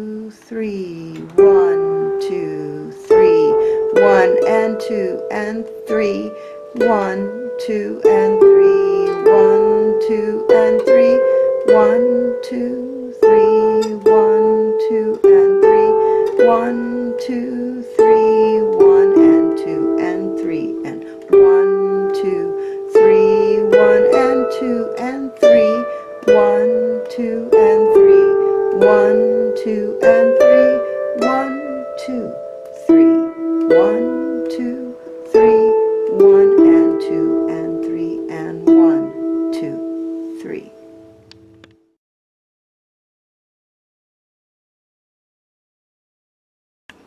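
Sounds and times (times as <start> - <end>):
harp playing slow waltz: 0.0 - 41.8.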